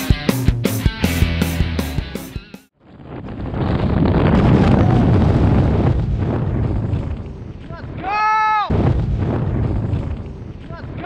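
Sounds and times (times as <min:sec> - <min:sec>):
wind roar on microphone: 0:02.8 - 0:07.7.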